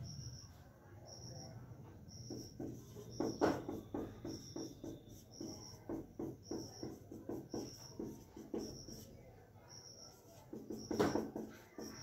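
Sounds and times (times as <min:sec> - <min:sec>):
faint high-pitched chirp: 0:00.0 - 0:12.0
marker pen writing on whiteboard: 0:02.1 - 0:12.0.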